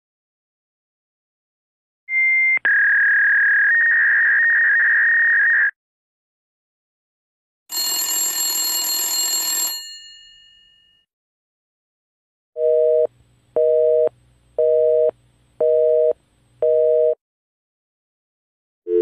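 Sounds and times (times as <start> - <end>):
electronic telephone ring: 7.7 - 10.7
bell-like telephone ring: 7.7 - 11.1.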